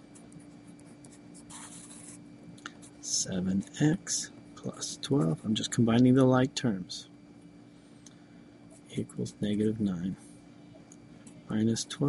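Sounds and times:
pencil writing on paper: 0.5s - 2.2s.

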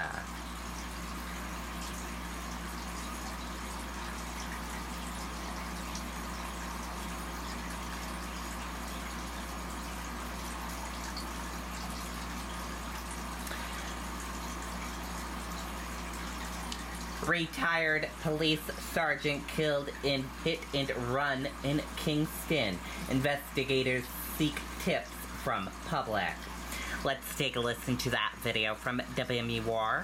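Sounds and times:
low electrical hum: 0.0s - 30.0s.

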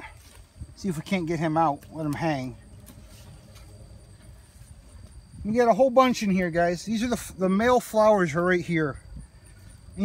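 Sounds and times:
rustling of leaves and stems: 0.0s - 7.0s
low steady rumble: 0.0s - 10.0s.

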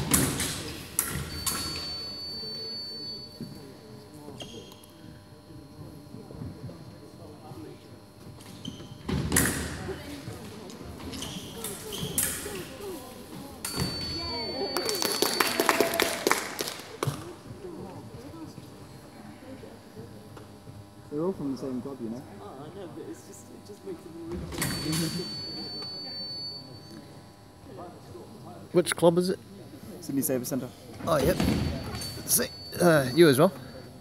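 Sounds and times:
high-pitched machine tone: 1.0s - 5.0s, 13.6s - 16.1s, 23.1s - 28.2s, 31.1s - 34.0s.

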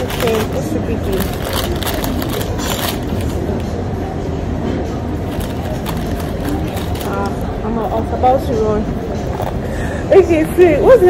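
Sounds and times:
restaurant background noise: 0.0s - 11.0s.

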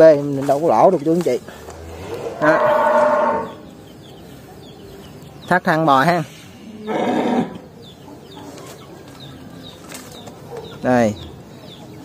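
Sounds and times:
cow mooing: 1.8s - 3.6s.

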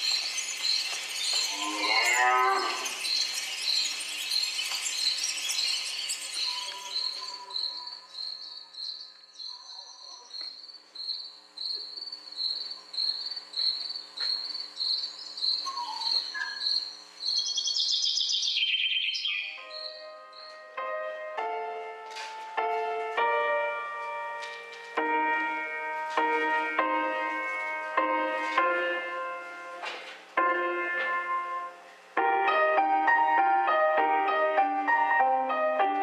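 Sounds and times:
insect chirping: 0.0s - 20.6s
piano music: 19.4s - 36.0s.

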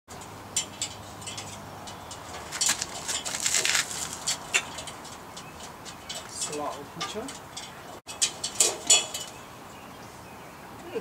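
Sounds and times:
dog claws clicking on metal ladder: 0.2s - 9.4s.

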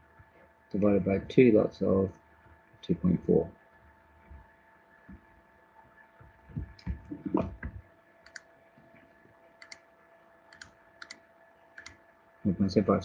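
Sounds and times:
faint electrical hum: 0.0s - 13.0s
soft low knocks: 6.4s - 7.8s
computer mouse clicking: 6.6s - 8.5s, 9.6s - 9.9s, 10.5s - 11.2s, 11.8s - 12.0s.

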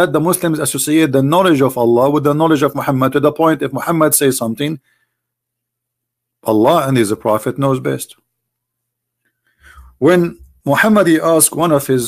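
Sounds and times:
man speaking: 0.0s - 4.8s, 6.4s - 8.2s, 9.7s - 12.0s
faint breath in: 4.8s - 5.4s, 9.3s - 10.0s.

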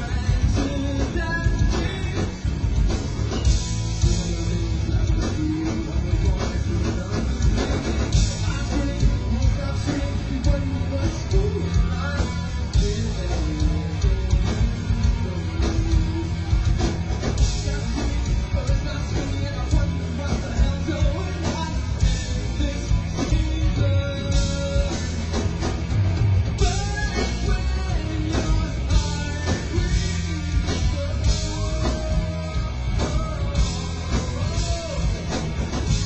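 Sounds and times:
drum kit: 0.0s - 36.0s
electric guitar: 0.0s - 36.0s
live rock band: 0.0s - 36.0s.

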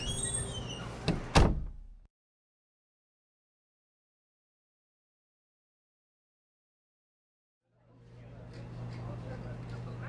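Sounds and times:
door closing with heavy thud: 0.0s - 2.0s.

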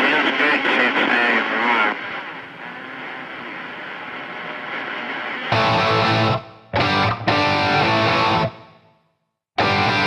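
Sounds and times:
voice over radio speaker: 0.0s - 3.1s
radio static hiss: 0.0s - 5.6s.

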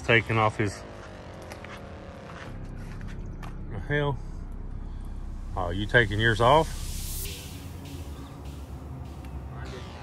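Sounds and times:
passing vehicle hum: 0.0s - 3.6s, 5.0s - 10.0s.

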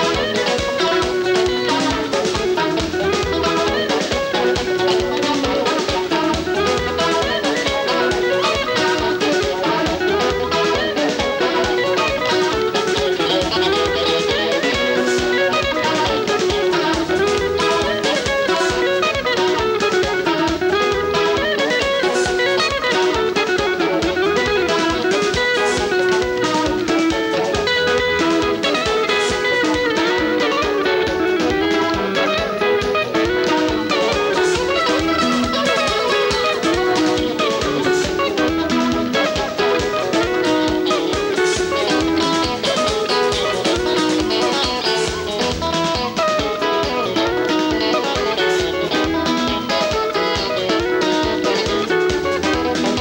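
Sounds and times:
bass guitar: 0.0s - 53.0s
drum kit beat: 0.0s - 53.0s
interlocking electric guitar lines: 0.0s - 53.0s.

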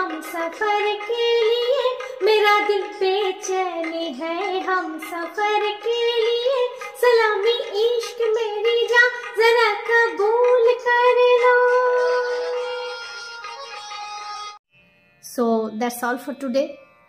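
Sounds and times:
woman singing: 0.0s - 13.1s.

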